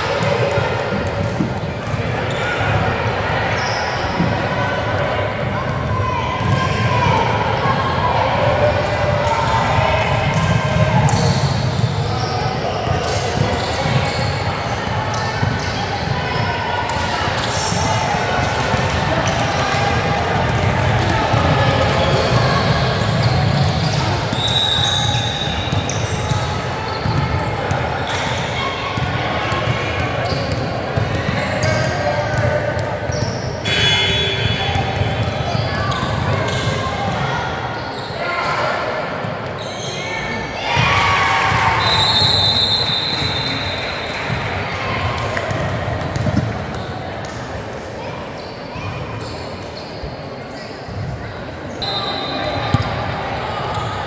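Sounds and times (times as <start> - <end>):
voices of players and spectators: 0.0 - 54.0
shoes squeaking on court: 21.5 - 28.5, 45.5 - 47.4, 48.2 - 53.0.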